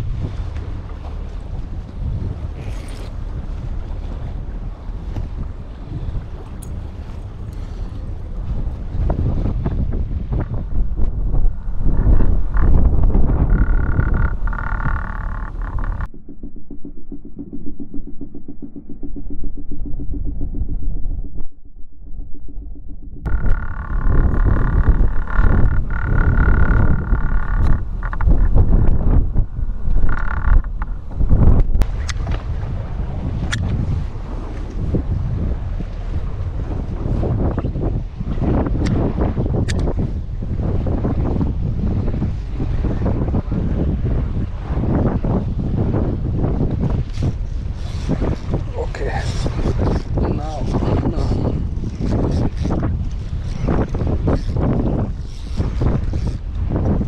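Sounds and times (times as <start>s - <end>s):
muffled low rumble: 0.0s - 37.1s
rumble of wind and water: 0.0s - 57.0s
wind buffeting microphone: 0.0s - 57.0s
sharp ticks: 12.5s - 28.6s, 29.9s - 31.0s.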